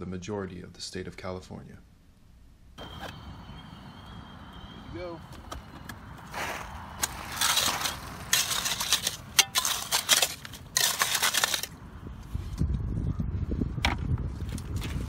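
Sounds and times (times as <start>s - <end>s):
rake scraping through gravel: 6.3s - 11.8s.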